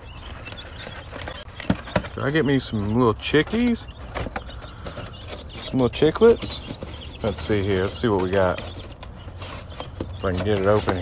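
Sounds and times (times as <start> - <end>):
tapping and scratching on cardboard: 3.4 - 11.0.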